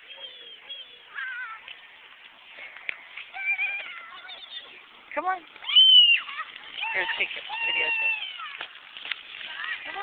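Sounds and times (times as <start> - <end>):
toddler high-pitched vocal sounds: 0.0 - 1.7, 3.3 - 4.8.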